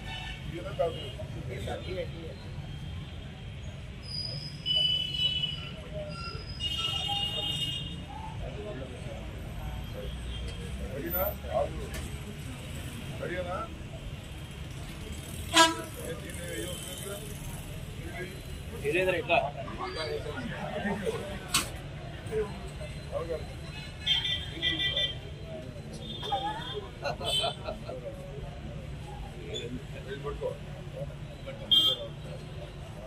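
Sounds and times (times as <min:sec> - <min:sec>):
faint murmuring voices: 0:00.0 - 0:33.0
low street hum: 0:00.0 - 0:33.0
traffic rumble: 0:00.0 - 0:33.0.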